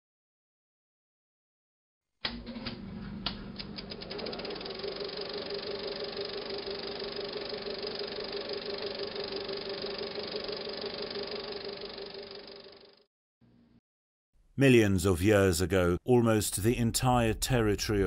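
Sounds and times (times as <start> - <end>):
film projector whirring rattle: 2.3 - 13.1.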